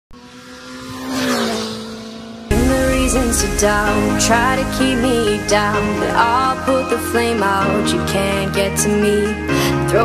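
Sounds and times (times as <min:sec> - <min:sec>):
vehicle passing at speed: 0:00.1 - 0:07.8
rush of air: 0:02.5 - 0:07.8.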